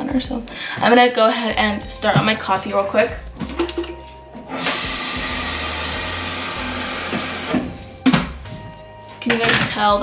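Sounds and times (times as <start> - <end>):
tap water filling glass carafe: 6.4 - 7.7.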